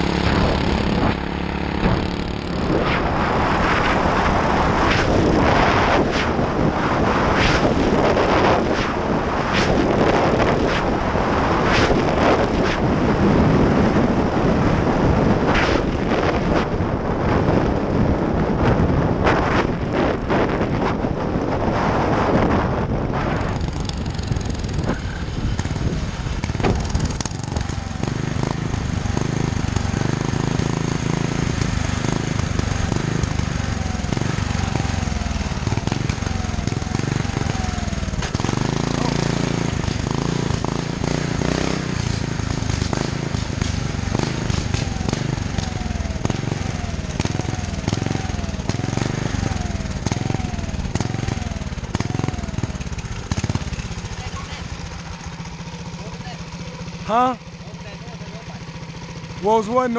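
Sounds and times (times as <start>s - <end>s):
exhaust pops: 0.0s - 21.0s, 22.3s - 57.4s
wind on microphone: 0.0s - 54.8s
small motorbike engine revving: 0.0s - 59.9s.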